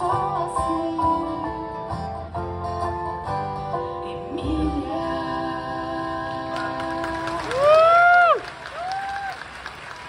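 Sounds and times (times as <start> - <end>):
applause: 6.5 - 10.0
person whooping cheer: 7.5 - 9.5.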